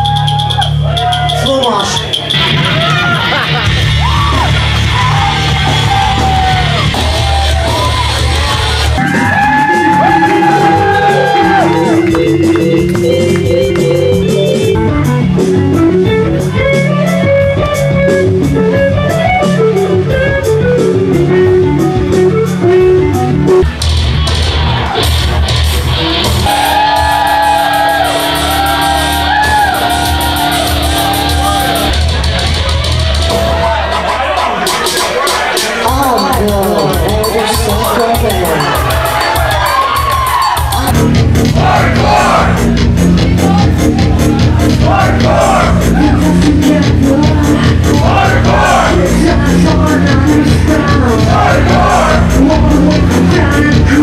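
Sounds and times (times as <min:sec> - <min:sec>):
rock band playing loud: 0:00.0 - 0:54.0
electric guitar riffing: 0:02.4 - 0:32.6, 0:35.8 - 0:54.0
person singing: 0:35.8 - 0:39.2, 0:44.4 - 0:54.0.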